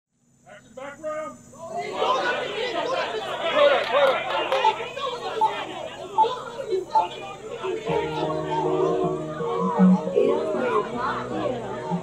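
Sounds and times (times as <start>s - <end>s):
crowd hubbub: 1.5s - 12.0s.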